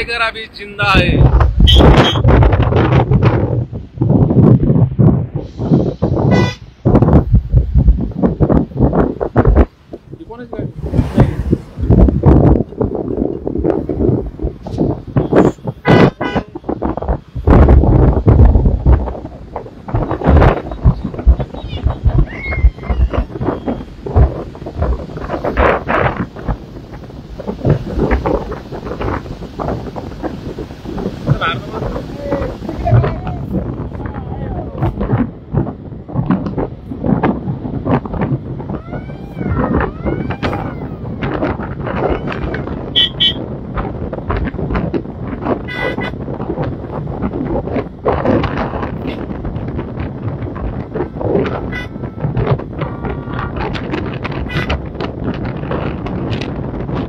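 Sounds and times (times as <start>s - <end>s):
road and engine noise: 0.0s - 57.0s
wind buffeting microphone: 0.0s - 57.0s
car horn toots: 1.6s - 2.2s, 6.3s - 6.6s, 15.2s - 16.6s, 42.9s - 43.4s, 45.6s - 46.2s, 51.5s - 52.2s, 54.4s - 54.8s
people calling out: 38.8s - 40.9s.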